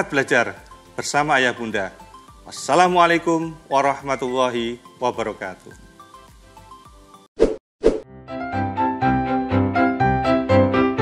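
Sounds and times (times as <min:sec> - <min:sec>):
background music: 0:00.0 - 0:07.3, 0:08.1 - 0:11.0.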